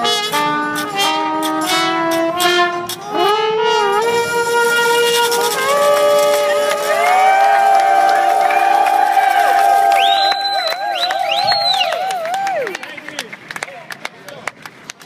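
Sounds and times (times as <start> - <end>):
high shrill whistles: 5.7 - 12.2.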